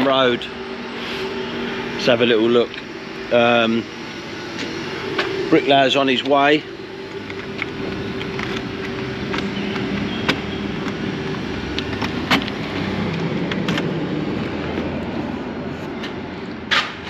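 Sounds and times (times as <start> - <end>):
held tone: 0.0 - 11.7
vehicle noise hum: 0.0 - 17.0.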